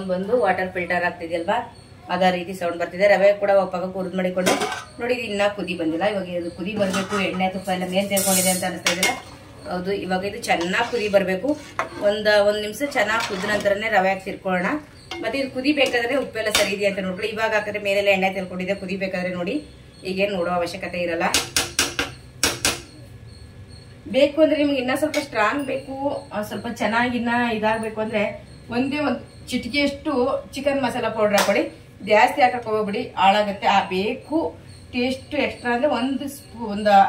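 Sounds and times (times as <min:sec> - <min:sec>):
metal ladle clinking on pot: 0:04.4 - 0:05.0, 0:06.8 - 0:07.5, 0:08.2 - 0:09.4.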